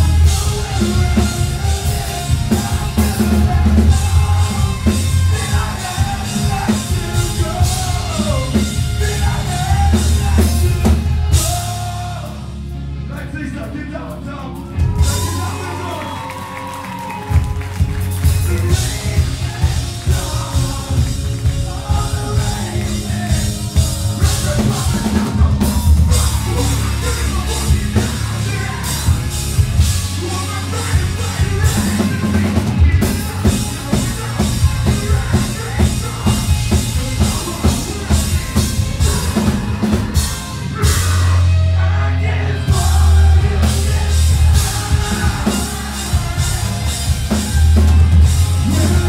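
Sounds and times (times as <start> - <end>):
bass and distorted guitar: 0.0 - 49.0
hardcore band playing live: 0.0 - 49.0.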